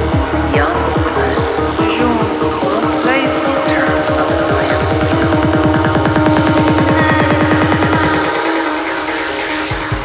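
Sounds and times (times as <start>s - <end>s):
psytrance music: 0.0s - 10.0s
rolling bass line: 0.0s - 10.0s
sweeping synth sounds: 0.0s - 10.0s.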